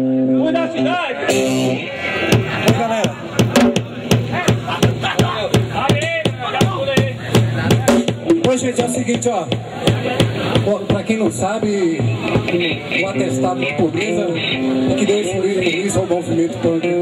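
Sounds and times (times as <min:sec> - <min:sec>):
drums steady beat: 0:01.3 - 0:17.0
guitar chord ringing: 0:12.5 - 0:15.8.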